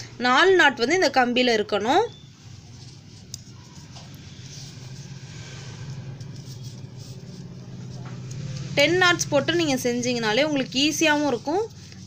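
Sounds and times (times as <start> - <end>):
vehicle engine rumble: 2.7 - 12.0.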